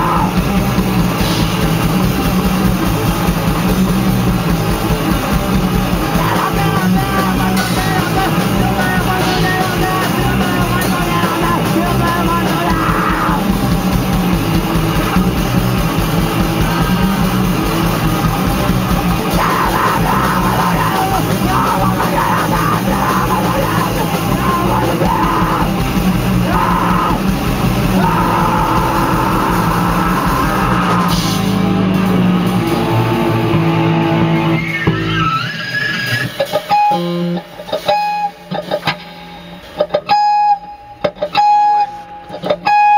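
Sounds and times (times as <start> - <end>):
rock band chord: 0.0 - 35.2
bass guitar: 0.0 - 42.9
distorted electric guitars: 0.0 - 42.9.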